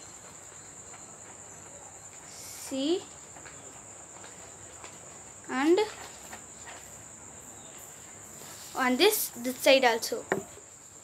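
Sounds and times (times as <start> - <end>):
crickets trilling: 0.0 - 11.0.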